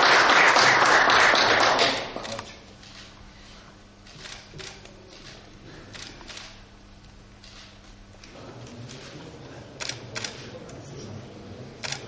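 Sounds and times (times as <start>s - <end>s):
camera shutter clicks: 4.1s - 6.6s.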